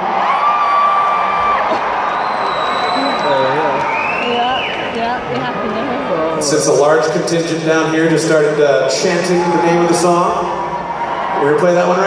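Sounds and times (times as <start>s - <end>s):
arena crowd noise: 0.0s - 12.0s
high whistles: 2.0s - 4.9s
man's voice: 6.1s - 10.6s.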